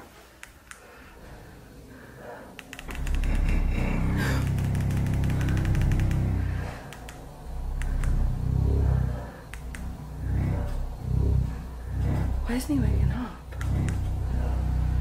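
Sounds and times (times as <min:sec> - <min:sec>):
massage motors humming: 0:00.0 - 0:15.0
fast rattle: 0:02.6 - 0:07.2.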